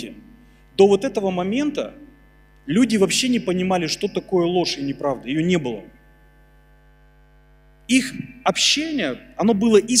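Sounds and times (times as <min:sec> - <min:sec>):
electrical mains hum: 0:00.0 - 0:10.0
man's voice: 0:07.9 - 0:10.0.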